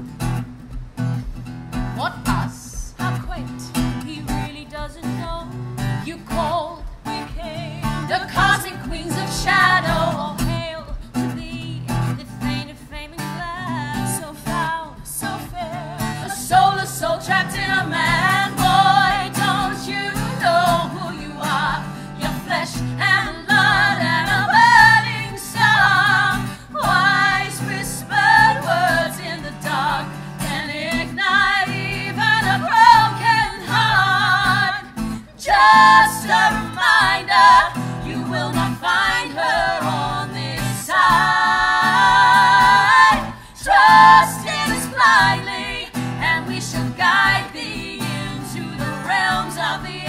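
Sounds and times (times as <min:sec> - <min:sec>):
acoustic guitar: 0:00.0 - 0:50.0
women singing together: 0:02.0 - 0:50.0.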